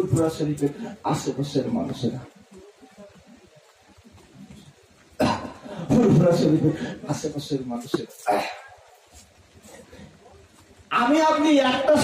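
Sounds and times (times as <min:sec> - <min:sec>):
man preaching over a microphone: 0:00.0 - 0:02.3, 0:05.8 - 0:08.6, 0:10.9 - 0:12.0
faint background sound: 0:00.0 - 0:12.0.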